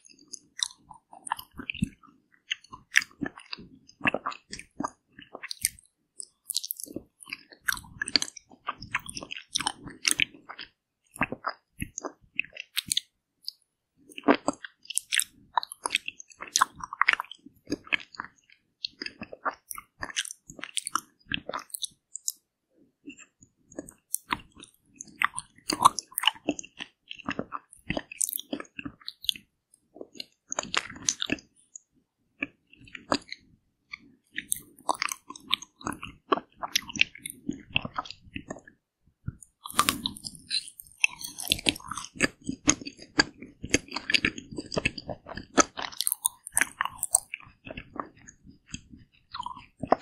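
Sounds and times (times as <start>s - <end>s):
biting and chewing ice cream: 0.0s - 50.0s.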